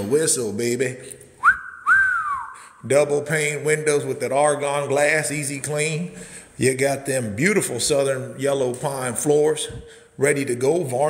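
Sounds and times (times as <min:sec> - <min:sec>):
man wolf whistling: 0:01.4 - 0:02.8.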